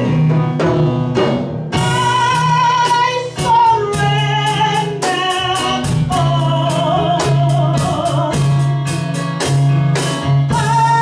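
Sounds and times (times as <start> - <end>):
instrumental accompaniment: 0.0 - 11.0
woman singing into microphone: 1.8 - 8.5, 10.5 - 11.0.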